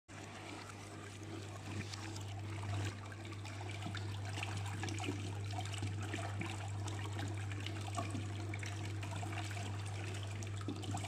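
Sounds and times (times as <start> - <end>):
water churning and splashing: 0.1 - 11.0.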